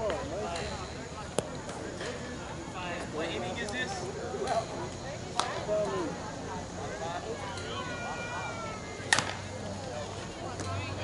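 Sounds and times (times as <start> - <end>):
bat cracking against ball: 9.1 - 9.5.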